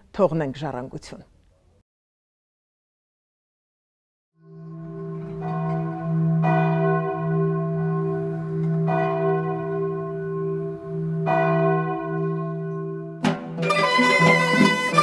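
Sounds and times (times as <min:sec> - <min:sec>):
deep bell strokes: 0:04.4 - 0:15.0.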